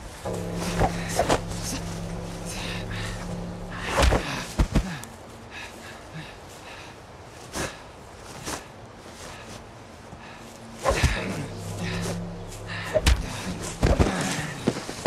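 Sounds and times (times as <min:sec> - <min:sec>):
low music score: 0:00.2 - 0:04.6, 0:11.1 - 0:14.6
impact thuds: 0:00.3 - 0:04.9, 0:10.9 - 0:14.5.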